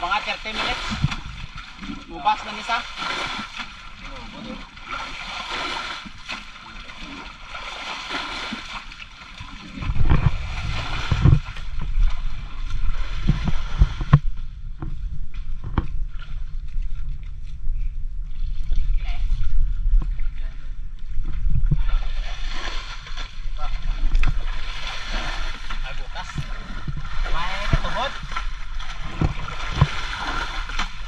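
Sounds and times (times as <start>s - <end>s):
water sloshing and splashing: 0.0s - 31.0s
low rumble: 9.8s - 31.0s.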